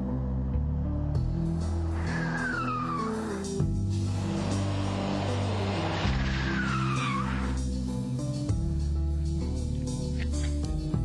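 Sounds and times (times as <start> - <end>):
background music: 0.0 - 11.0
car tyres squealing: 1.7 - 8.0.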